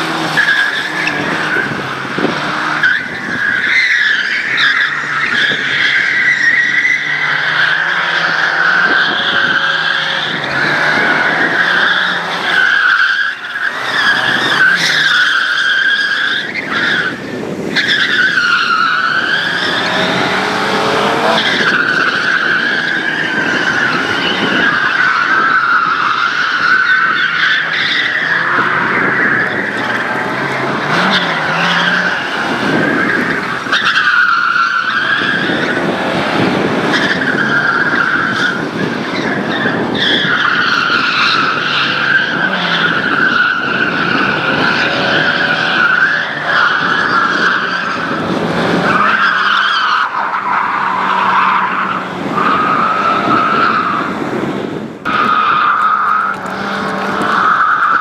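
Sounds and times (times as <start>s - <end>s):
tyres squealing: 0.0s - 35.9s
rally car engine revving: 0.0s - 58.0s.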